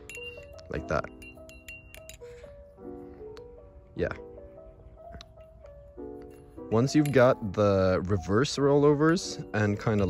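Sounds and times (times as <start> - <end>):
lofi background music: 0.0 - 10.0.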